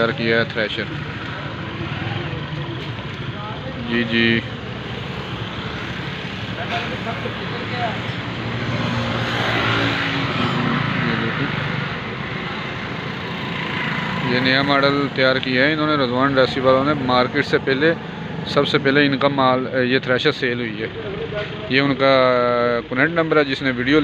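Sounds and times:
people's voices: 0:00.0 - 0:05.6, 0:06.2 - 0:12.5
engines and traffic din: 0:00.0 - 0:24.0.

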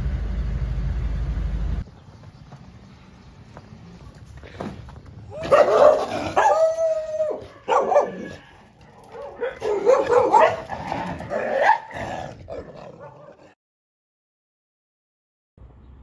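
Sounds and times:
dog barking and yelping: 0:05.3 - 0:13.5.

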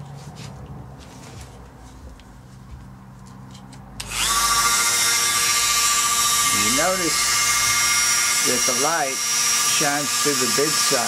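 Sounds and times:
router high-pitched whine: 0:04.0 - 0:11.0.

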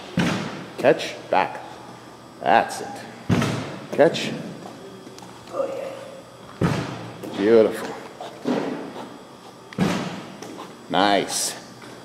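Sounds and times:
medicine ball thump on hands: 0:06.6 - 0:07.0.

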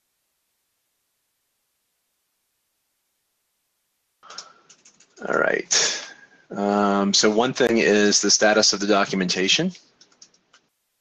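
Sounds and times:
faint keyboard keystrokes: 0:04.3 - 0:05.4.

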